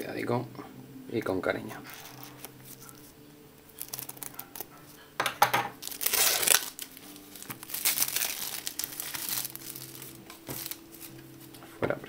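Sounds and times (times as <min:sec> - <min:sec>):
plastic shrink-wrap crinkling: 0:03.7 - 0:05.0, 0:05.8 - 0:11.6.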